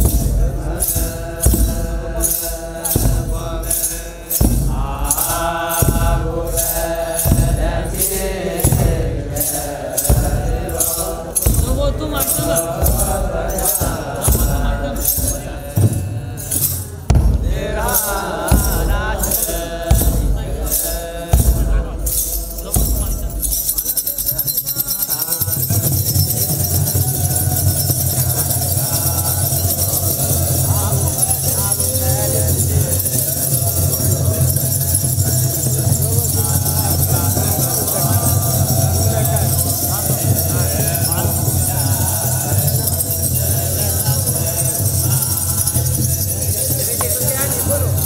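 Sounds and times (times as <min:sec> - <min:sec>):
clergy chanting: 0:00.0 - 0:48.0
sistra shaken in a beat: 0:00.0 - 0:48.0.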